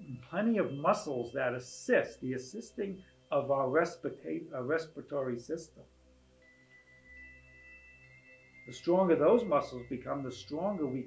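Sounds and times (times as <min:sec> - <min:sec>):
high steady tones: 0:00.0 - 0:11.0
soft low chord: 0:00.0 - 0:11.0.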